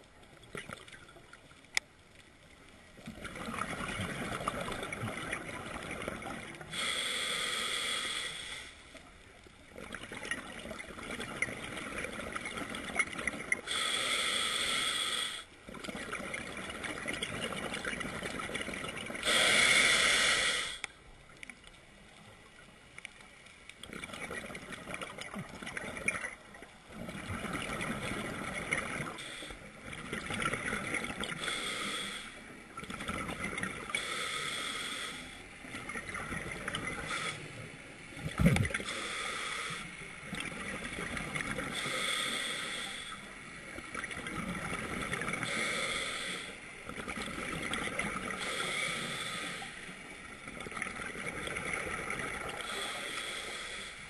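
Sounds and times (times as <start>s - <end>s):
diver breathing through regulator: 6.6s - 8.9s, 13.6s - 15.5s, 19.2s - 20.9s, 28.0s - 29.7s, 31.2s - 32.5s, 33.8s - 35.5s, 36.8s - 37.7s, 38.8s - 40.1s, 41.6s - 43.3s, 45.4s - 46.7s, 48.2s - 50.0s, 52.4s - 54.0s.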